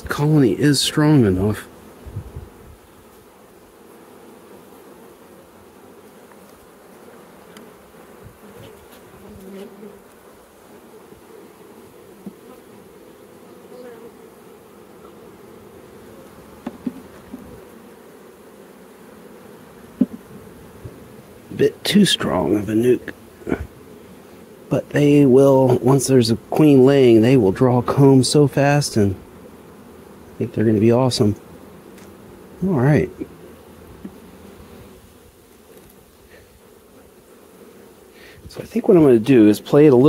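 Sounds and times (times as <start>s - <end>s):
honeybees humming: 0.0s - 40.0s.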